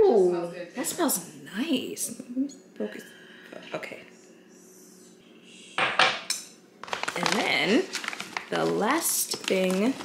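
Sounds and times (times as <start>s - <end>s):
hard items clattering together: 6.8s - 10.0s.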